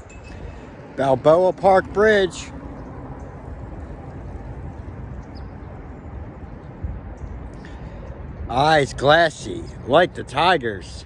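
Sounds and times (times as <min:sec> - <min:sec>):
outdoor rumble and hiss: 0:00.0 - 0:11.0.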